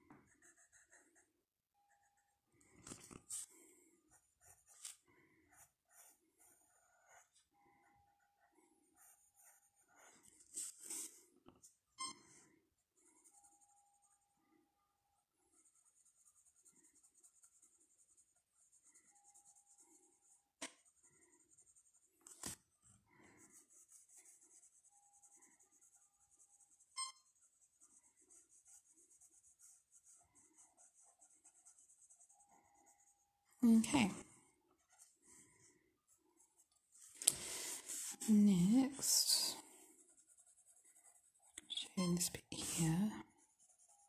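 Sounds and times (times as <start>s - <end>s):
pencil scratching on paper: 0.1s - 7.5s, 8.2s - 12.4s, 13.0s - 14.3s, 15.2s - 44.0s.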